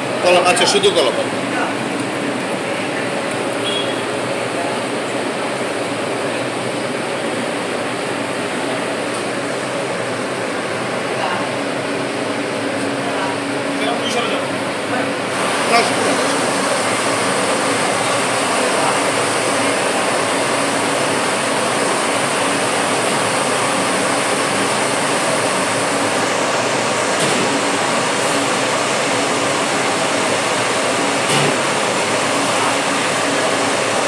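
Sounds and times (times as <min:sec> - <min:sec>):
gas burner roaring: 0:00.0 - 0:34.0.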